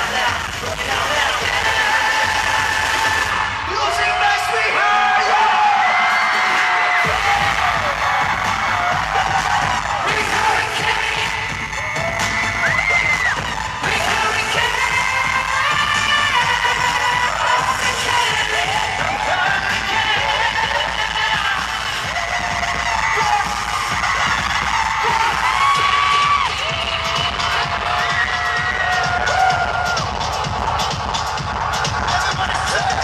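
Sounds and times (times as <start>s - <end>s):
fans screaming: 0.0s - 33.0s
pop song over loudspeakers: 0.0s - 33.0s.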